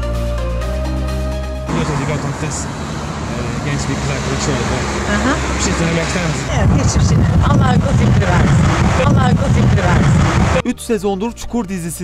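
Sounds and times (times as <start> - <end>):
man and woman talking: 1.7 - 2.7, 3.3 - 12.0
loud low rumble: 1.7 - 10.6.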